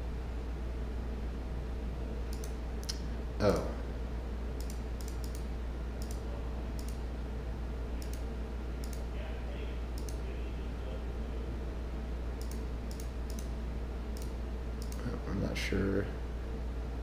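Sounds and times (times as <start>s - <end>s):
steady low hum: 0.0s - 17.0s
computer mouse clicks: 2.3s - 3.0s, 4.6s - 6.2s, 6.8s - 7.0s, 8.0s - 9.1s, 10.0s - 10.2s, 12.4s - 13.5s, 14.2s - 15.1s.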